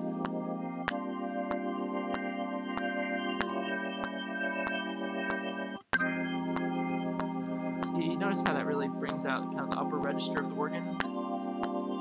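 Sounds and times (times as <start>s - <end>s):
jazz organ holding chord: 0.0s - 12.0s.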